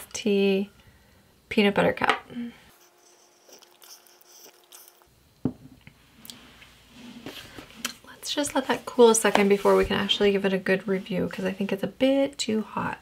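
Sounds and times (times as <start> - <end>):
person sipping tea: 2.8 - 5.1.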